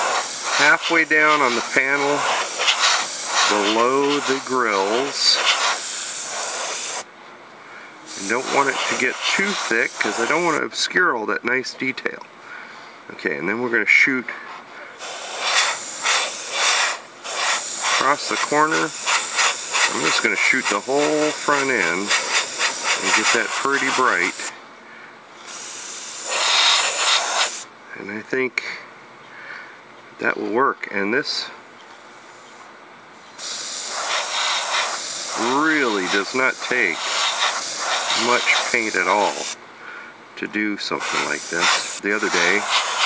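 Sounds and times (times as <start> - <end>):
airbrush spraying hiss: 0.0 - 7.1, 8.1 - 10.6, 15.0 - 24.5, 25.4 - 27.7, 33.3 - 39.6, 40.9 - 43.0.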